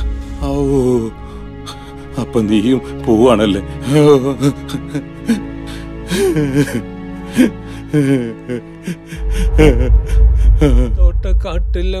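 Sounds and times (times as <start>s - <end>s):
man sobbing and wailing: 0.0s - 11.4s
background music: 0.0s - 12.0s
deep low rumble: 9.2s - 12.0s.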